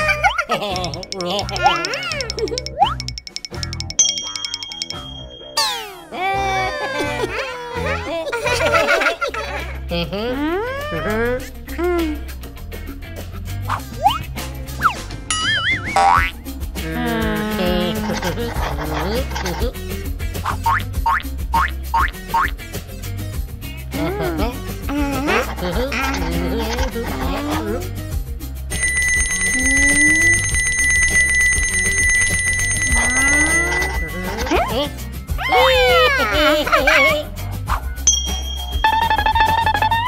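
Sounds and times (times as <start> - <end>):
light background music: 0.0 - 40.0
wobbling wavering cartoon tone: 0.7 - 6.1, 15.3 - 16.3, 29.1 - 34.8, 38.1 - 40.0
electric school bell ringing: 0.9 - 5.9, 28.7 - 34.6.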